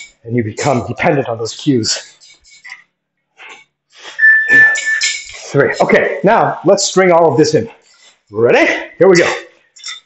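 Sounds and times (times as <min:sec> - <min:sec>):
high metallic ring: 0:04.2 - 0:05.4.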